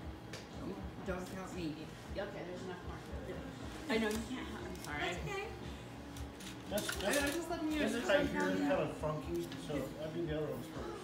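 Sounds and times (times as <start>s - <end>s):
indistinct conversation: 0.6s - 11.0s.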